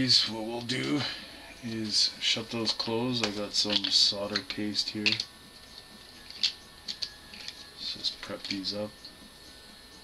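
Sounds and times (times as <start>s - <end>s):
small tools clicking and tapping: 1.8s - 8.8s.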